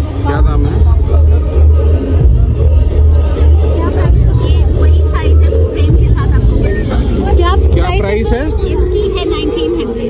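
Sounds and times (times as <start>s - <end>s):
bass-heavy music over loudspeakers: 0.0s - 10.0s
people talking: 3.0s - 10.0s.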